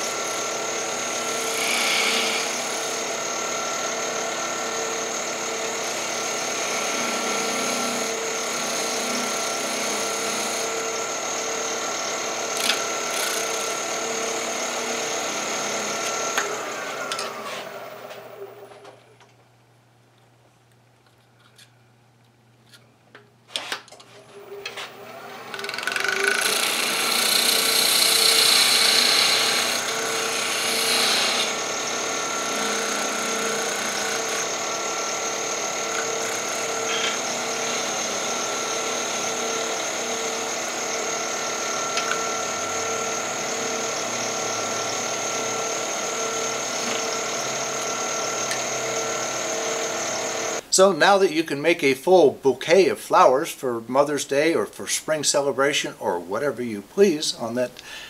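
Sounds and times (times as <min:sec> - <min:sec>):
wood lathe motor running: 0:00.0 - 0:18.7, 0:24.4 - 0:50.6.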